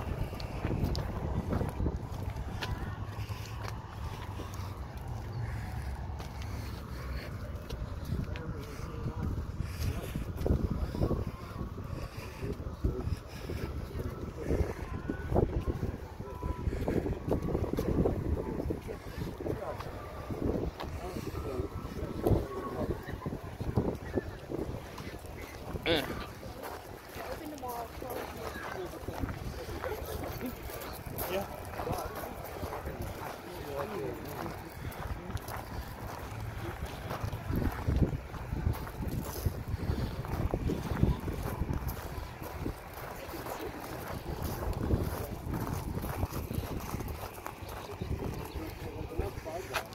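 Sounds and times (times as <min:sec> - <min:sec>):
faint voices: 0:00.0 - 0:49.9
wind buffeting microphone: 0:00.0 - 0:49.9.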